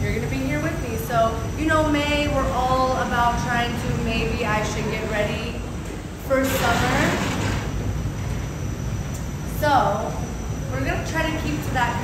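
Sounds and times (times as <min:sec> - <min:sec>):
low mechanical rumble: 0:00.0 - 0:12.0.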